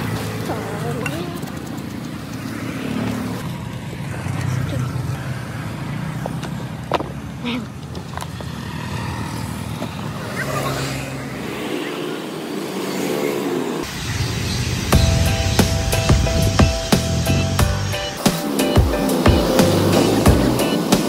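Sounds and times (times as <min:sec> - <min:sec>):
motorbike engines passing: 0:00.0 - 0:21.0.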